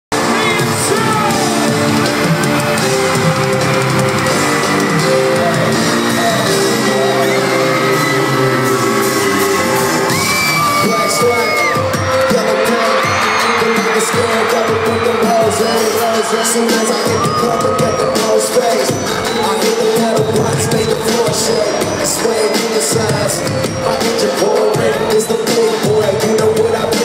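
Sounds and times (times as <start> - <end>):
crowd yelling: 0.1 - 27.0
loud live hip-hop music: 0.1 - 27.0.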